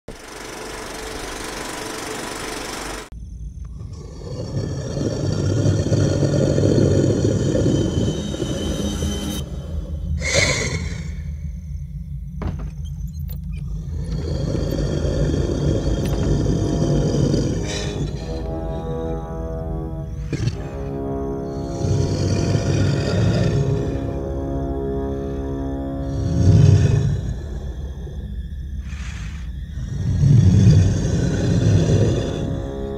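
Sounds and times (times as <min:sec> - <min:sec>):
low rumbling drone: 0:00.1 - 0:32.9
monster roar: 0:03.8 - 0:08.8, 0:10.2 - 0:11.3, 0:13.9 - 0:19.0, 0:20.0 - 0:28.2, 0:29.8 - 0:32.9
even hiss: 0:25.0 - 0:32.9.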